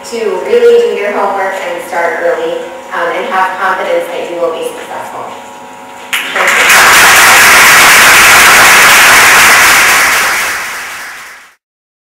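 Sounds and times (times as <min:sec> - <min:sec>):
audience applauding: 0:06.1 - 0:11.6.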